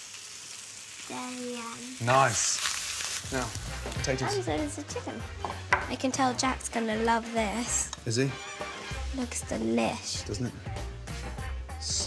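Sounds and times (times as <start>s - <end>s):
food sizzling in a pan: 0.0s - 12.0s.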